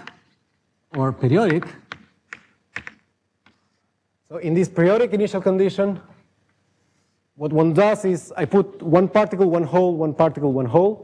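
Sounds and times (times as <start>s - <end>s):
chalk tapping on blackboard: 0.0s - 3.8s.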